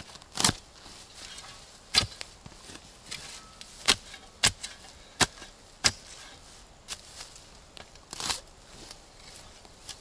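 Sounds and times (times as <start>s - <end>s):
shovel chopping into soil and roots: 0.0s - 7.1s, 7.8s - 8.5s.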